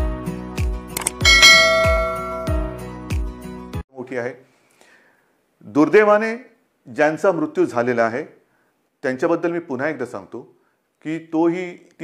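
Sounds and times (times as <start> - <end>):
sharp clicks: 1.0 - 1.2
bright bell chime: 1.2 - 2.8.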